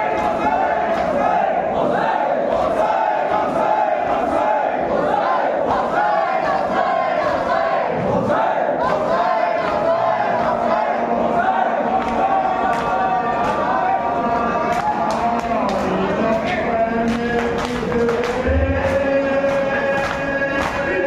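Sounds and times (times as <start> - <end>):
crowd of men chanting: 0.0 - 21.0.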